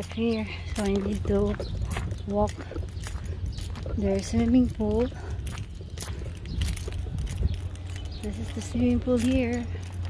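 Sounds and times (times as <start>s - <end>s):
light jingling and clicking: 0.0s - 10.0s
wind rumble on microphone: 0.0s - 10.0s.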